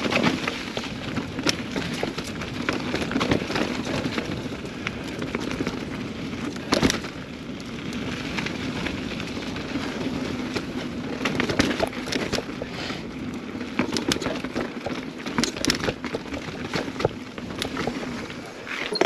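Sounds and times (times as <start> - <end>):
bike rattling and clicking: 0.0 - 19.0
bike tyres rolling on dirt: 0.0 - 19.0.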